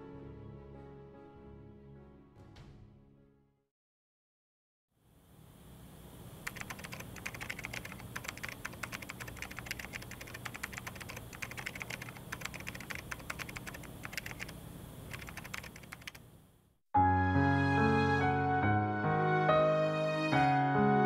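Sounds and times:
rapid light clicks: 0:06.4 - 0:16.2.

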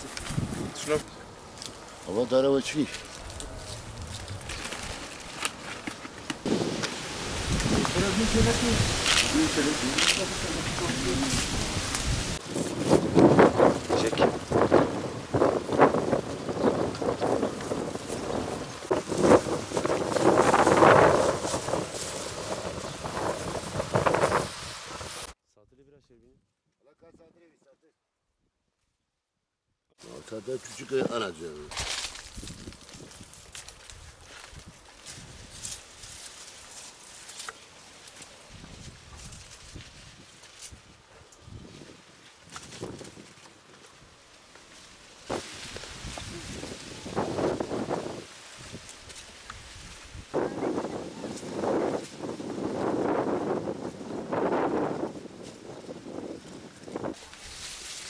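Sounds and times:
wind buffeting microphone: 0:00.0 - 0:01.2, 0:03.1 - 0:05.2, 0:06.3 - 0:25.4, 0:32.2 - 0:35.7, 0:45.3 - 0:57.7
leaves rustling and fruit knocking: 0:00.0 - 0:25.4, 0:30.0 - 0:58.0.

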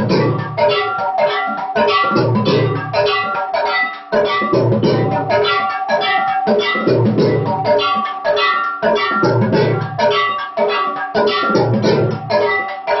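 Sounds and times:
drums beating rhythm: 0:00.0 - 0:13.0
ringing metal bells: 0:00.0 - 0:13.0.

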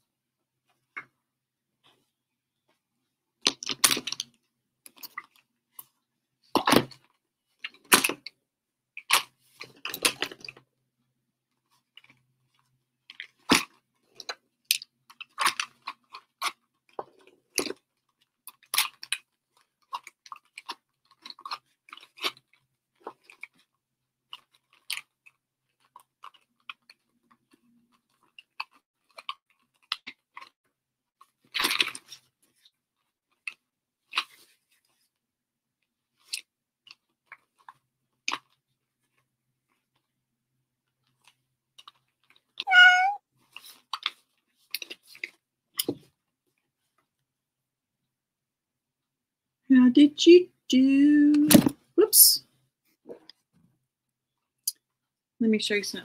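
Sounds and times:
person chewing crunchy food: 0:03.5 - 0:05.9, 0:11.9 - 0:23.7, 0:24.3 - 0:30.6, 0:31.2 - 0:32.7
cat meow: 0:42.7 - 0:43.2.

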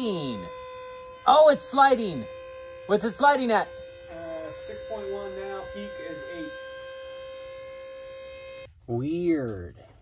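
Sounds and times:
electric motor hum: 0:00.0 - 0:08.7.

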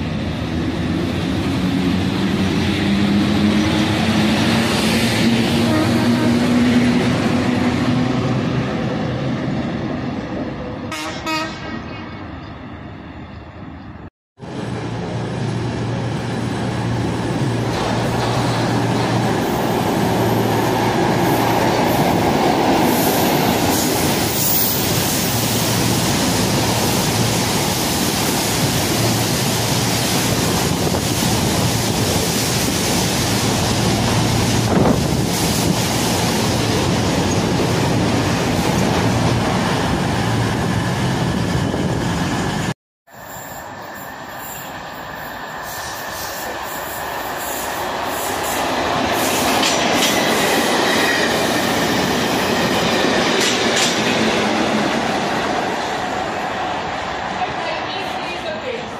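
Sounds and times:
train passing at speed: 0:00.0 - 0:58.9.

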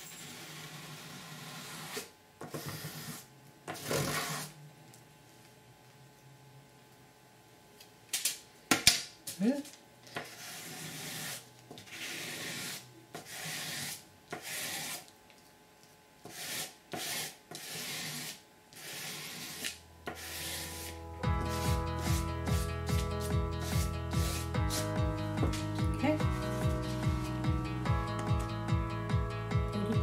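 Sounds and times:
ruler scraping shaving cream: 0:01.3 - 0:04.5, 0:10.1 - 0:15.1, 0:16.3 - 0:24.9
background music with guitar: 0:21.0 - 0:30.0.

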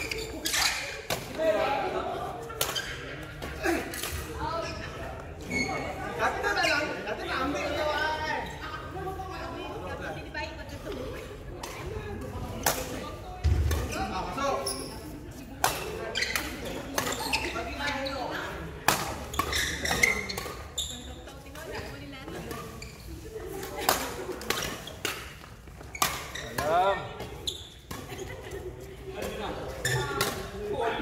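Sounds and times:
people chatting in a large hall: 0:00.0 - 0:31.0
players' voices: 0:00.0 - 0:31.0
racket hitting shuttlecock: 0:18.8 - 0:20.7, 0:29.9 - 0:30.5.

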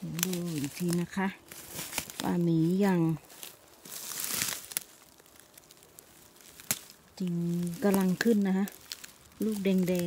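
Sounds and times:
shrubs rustling: 0:00.0 - 0:10.0.

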